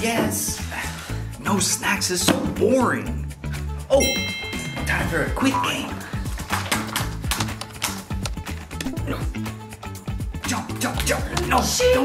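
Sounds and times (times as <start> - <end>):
background music: 0.0 - 12.0
laptop keyboard typing: 6.5 - 8.4.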